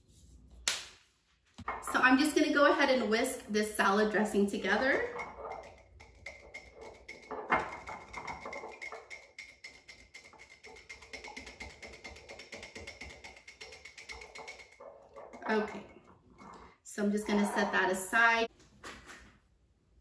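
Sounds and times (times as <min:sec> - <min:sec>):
whisk clinking in glass jar: 0:03.8 - 0:16.5.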